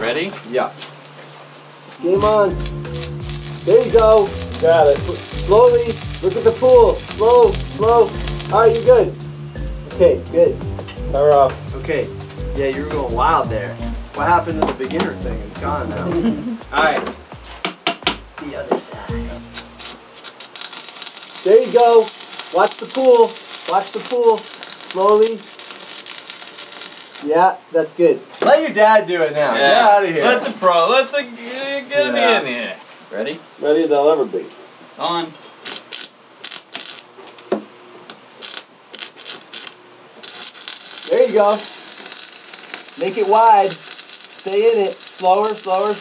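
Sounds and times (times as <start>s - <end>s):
welding arc crackling sizzle: 0.0s - 10.6s, 18.5s - 28.2s, 35.0s - 46.0s.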